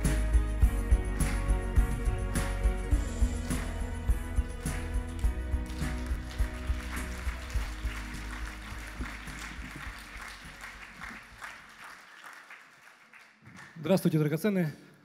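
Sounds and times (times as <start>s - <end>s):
people applauding: 3.3s - 14.4s.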